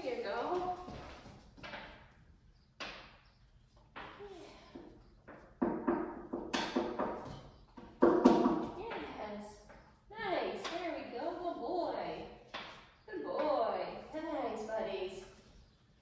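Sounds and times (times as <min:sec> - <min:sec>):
knocks and thuds on hard floor: 0:05.6 - 0:08.8.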